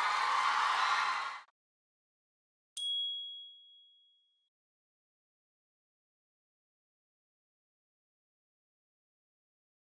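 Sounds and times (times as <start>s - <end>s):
bright bell-like ding: 2.8s - 4.5s.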